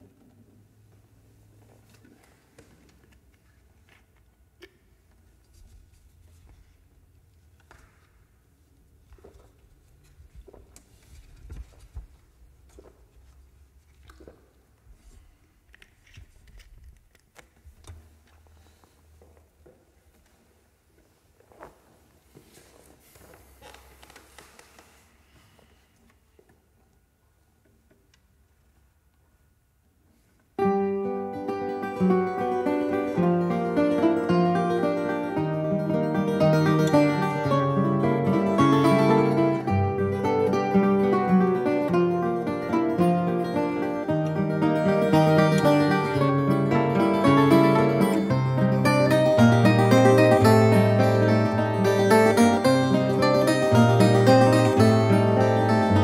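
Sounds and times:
rustling: 0:05.0 - 0:27.6.

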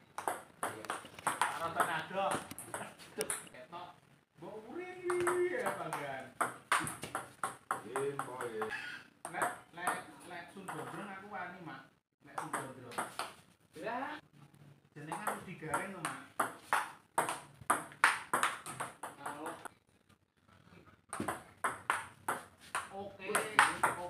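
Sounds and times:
table tennis ball clicking: 0:00.2 - 0:01.6.

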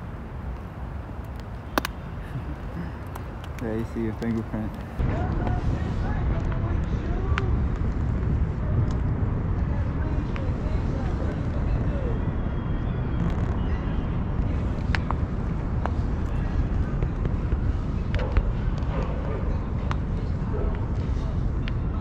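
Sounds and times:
traffic noise: 0:00.0 - 0:22.0
wind rumble on microphone: 0:00.0 - 0:22.0.

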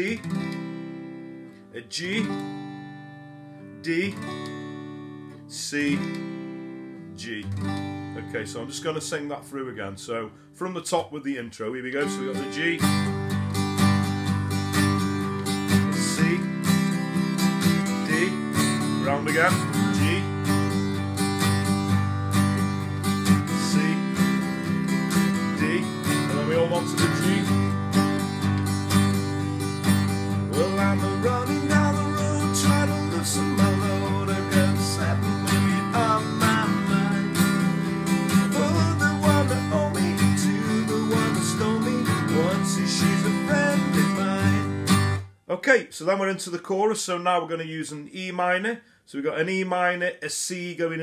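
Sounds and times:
acoustic guitar strumming chords: 0:00.0 - 0:11.1, 0:11.9 - 0:45.6.

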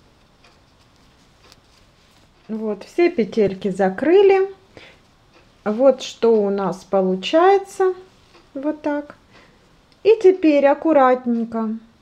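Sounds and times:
background hiss: 0:00.0 - 0:12.0
knitting needles clicking: 0:00.2 - 0:04.5.

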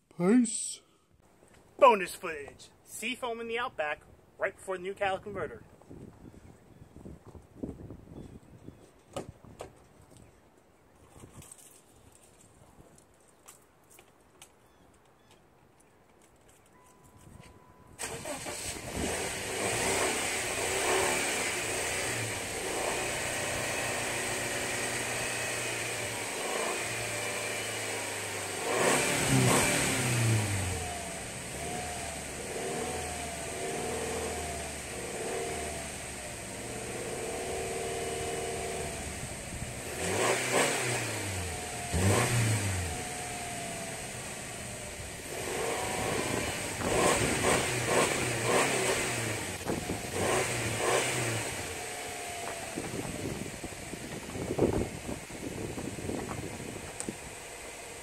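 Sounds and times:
car engine idling and revving: 0:17.6 - 0:58.0.

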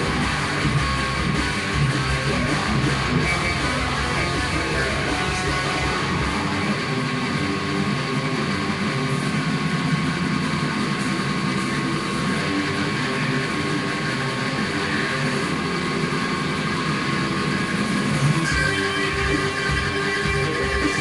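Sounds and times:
distorted electric guitar riff: 0:00.0 - 0:21.0.

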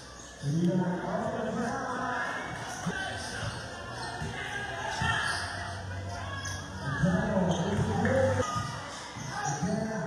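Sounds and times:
babble of spectators' voices: 0:00.0 - 0:10.0
basketball bouncing on court: 0:07.4 - 0:09.3.

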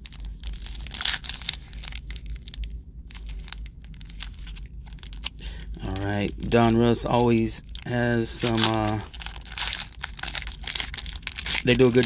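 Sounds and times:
foil wrapper tearing and crinkling: 0:00.0 - 0:12.0.

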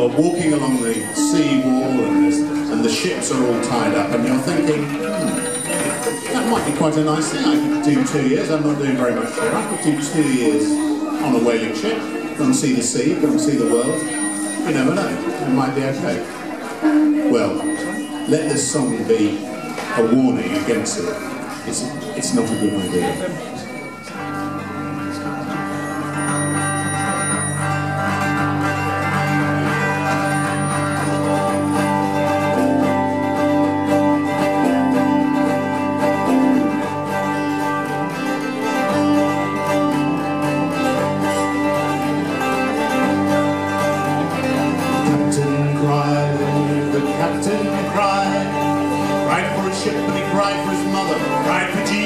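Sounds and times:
slide guitar: 0:00.0 - 0:52.0
strummed acoustic guitar: 0:00.0 - 0:52.0.

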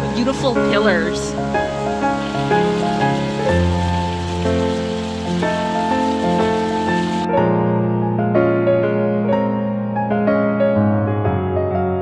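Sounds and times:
fountain water splashing: 0:00.0 - 0:07.3
piano music with held chords: 0:00.0 - 0:12.0.

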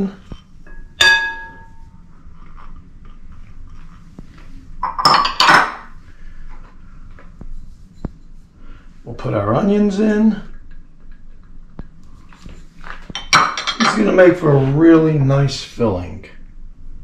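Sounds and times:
glass dishes clinking: 0:00.7 - 0:01.8, 0:04.8 - 0:05.9, 0:13.2 - 0:14.2.

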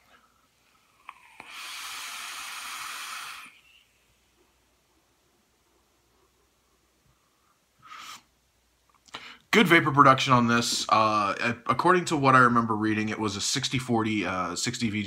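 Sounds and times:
e-cigarette hissing draw: 0:01.1 - 0:03.7.

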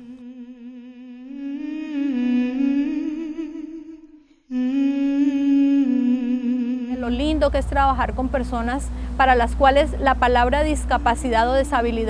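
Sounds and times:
person humming long notes: 0:00.0 - 0:07.6.

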